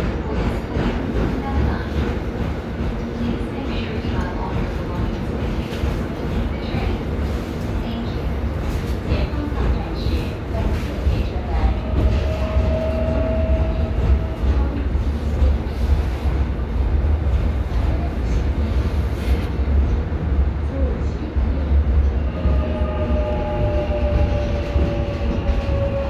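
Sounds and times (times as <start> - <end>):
train rumbling in tunnel: 0.0 - 26.0.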